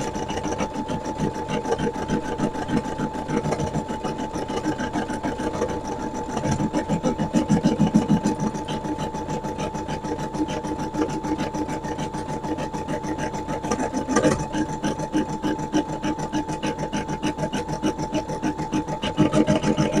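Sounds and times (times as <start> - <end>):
embroidery machine stitching: 0.0 - 20.0.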